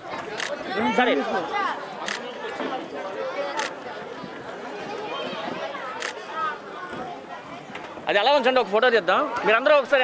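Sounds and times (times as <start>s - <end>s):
murmur of voices: 0.0s - 10.0s
camera shutter click: 0.4s - 0.6s, 2.0s - 2.2s, 3.6s - 3.8s, 6.0s - 6.2s.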